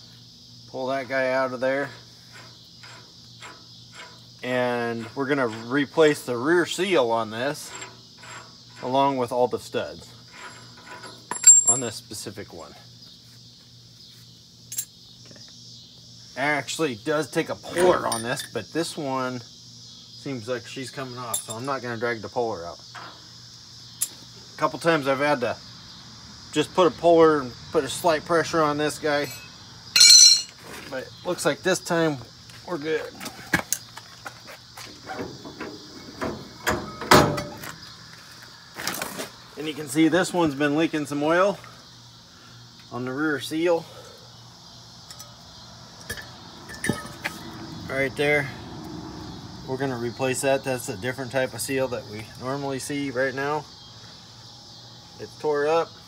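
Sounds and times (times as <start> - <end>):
insects chirring: 0.0 - 56.0
metal part clinking on concrete: 10.3 - 12.0, 14.7 - 15.0, 17.7 - 18.6, 21.3 - 21.8, 29.2 - 30.6, 45.0 - 45.4, 46.0 - 47.4
loud metal clank: 29.3 - 30.6, 35.1 - 37.6, 46.1 - 47.4.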